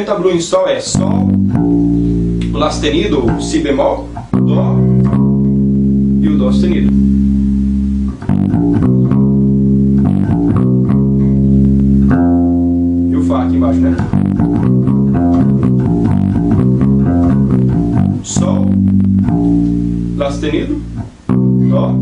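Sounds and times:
electric bass guitar plucked: 0.0 - 22.0.

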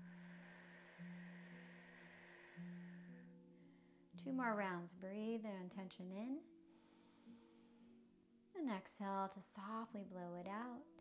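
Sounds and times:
exhale through pursed lips: 0.0 - 4.0
quiet background music: 0.0 - 11.0.

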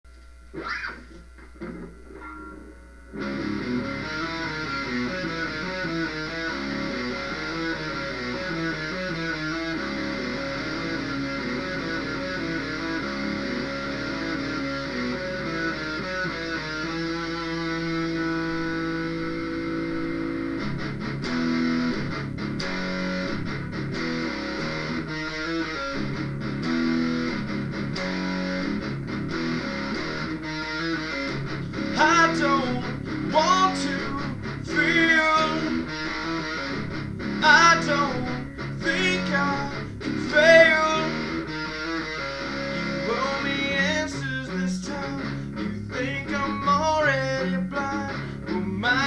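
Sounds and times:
electric guitar single notes: 0.1 - 49.0.

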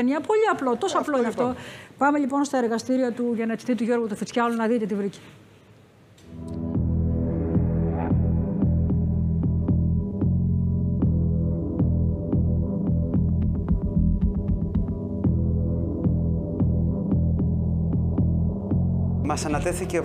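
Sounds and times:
droning suspense music: 6.3 - 19.2.

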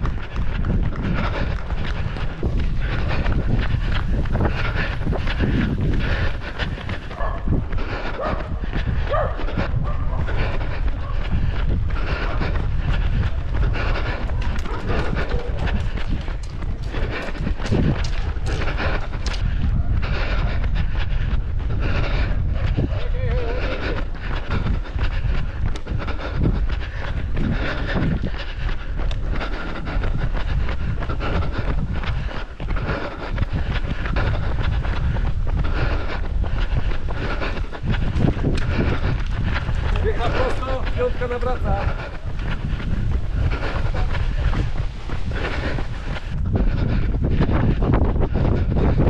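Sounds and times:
running footfalls: 0.0 - 49.0
wind buffeting microphone: 0.0 - 49.0
voices: 22.7 - 24.3, 39.8 - 42.5.

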